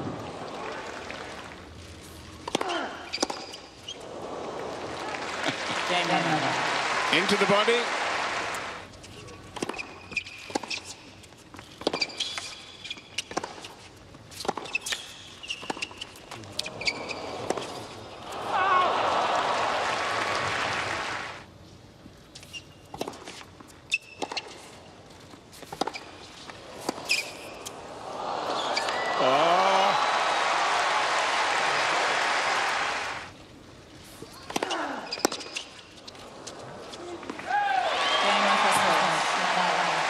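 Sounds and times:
crowd applause and cheering: 4.0 - 8.9, 18.3 - 21.4, 27.9 - 33.3, 37.5 - 40.0
shoe squeaks: 9.0 - 18.0, 22.4 - 23.1, 23.8 - 24.7, 25.5 - 27.7, 34.7 - 36.2.

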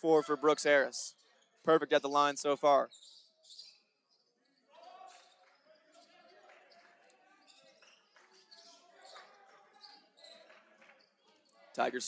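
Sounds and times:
distant voices in large hall: 2.8 - 12.0.

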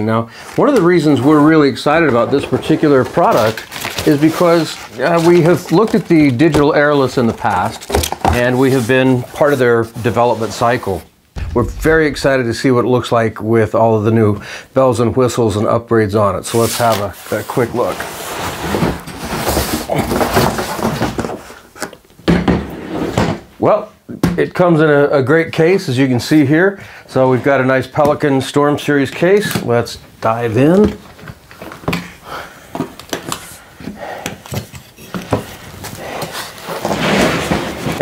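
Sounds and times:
sharp knock: 11.4 - 12.7
cardboard scraping and rubbing: 36.6 - 38.0.

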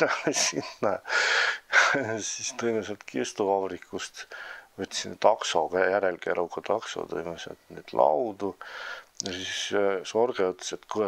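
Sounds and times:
man speaking: 0.0 - 11.0
breathy exhale: 1.1 - 1.6, 4.3 - 4.7, 8.6 - 9.1.

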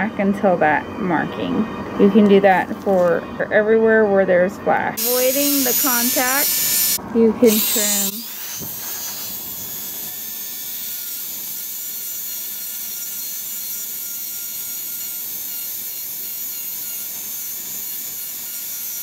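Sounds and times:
dental drill high whine: 5.0 - 19.0.

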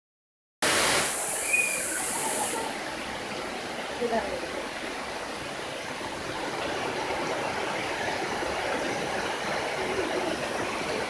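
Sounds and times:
heavy rain pouring: 0.6 - 11.0.

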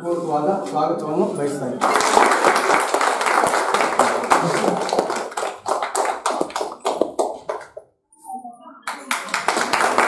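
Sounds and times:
group clapping hands: 1.8 - 7.9, 8.9 - 10.0.

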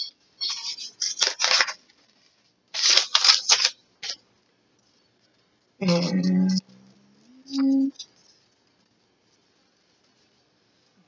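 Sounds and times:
paper rustling: 0.5 - 4.2.

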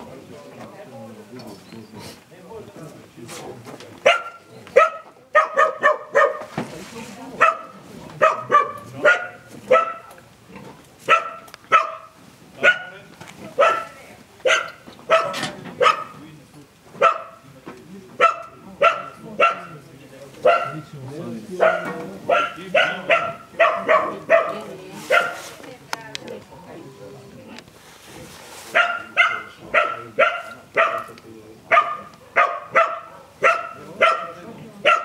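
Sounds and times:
dog barking: 4.0 - 6.5, 7.4 - 10.1, 11.1 - 13.0, 13.6 - 16.2, 17.0 - 17.4, 18.2 - 19.8, 20.4 - 20.9, 21.5 - 25.5, 28.7 - 35.0.

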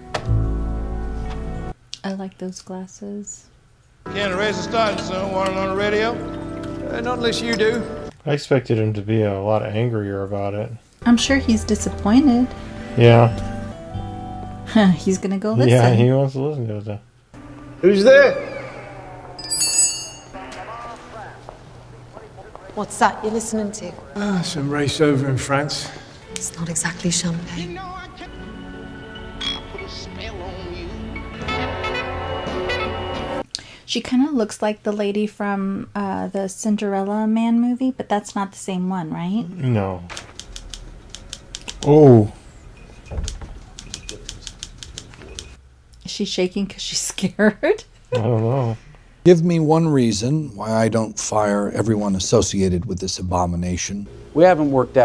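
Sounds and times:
high metallic ring: 19.4 - 20.7.

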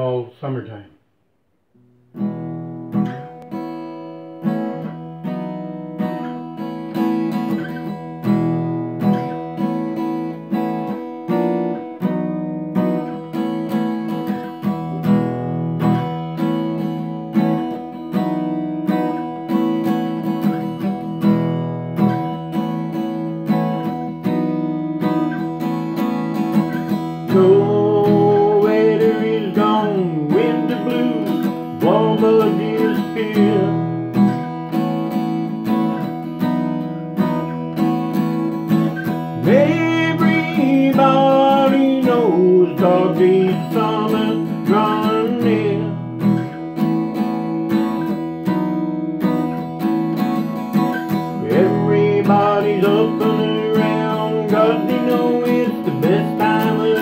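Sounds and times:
acoustic guitar strumming: 0.0 - 57.0
man singing: 27.0 - 34.3, 39.3 - 46.5, 51.2 - 57.0.

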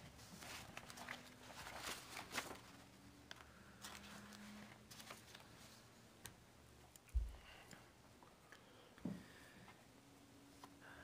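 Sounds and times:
paper rustling: 0.0 - 5.8.

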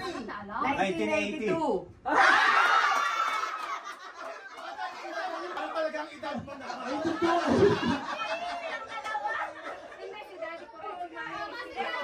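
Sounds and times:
crowd laughing: 2.2 - 10.3
chatter: 3.9 - 12.0.

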